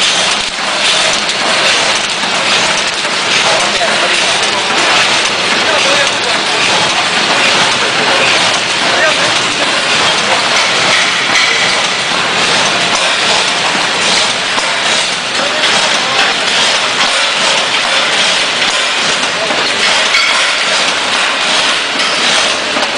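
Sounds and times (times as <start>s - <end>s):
packing machinery running: 0.0s - 22.9s.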